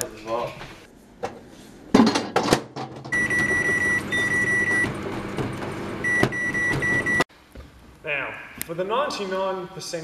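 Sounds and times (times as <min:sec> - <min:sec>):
microwave oven beeping: 0:03.1 - 0:07.3
steady microwave hum: 0:03.1 - 0:07.3.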